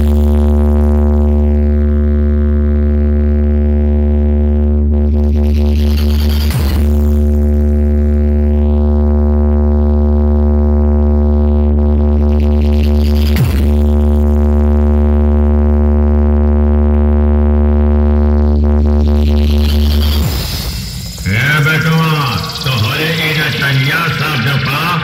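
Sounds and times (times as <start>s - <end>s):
electronic dance music: 18.6s - 25.0s.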